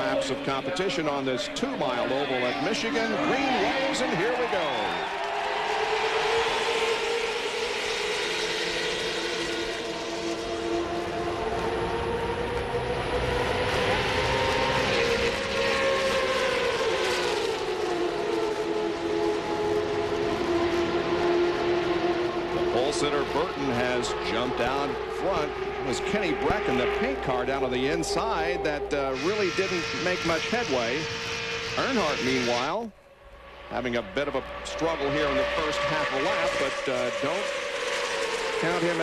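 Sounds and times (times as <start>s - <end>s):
race car engines droning: 0.0s - 39.0s.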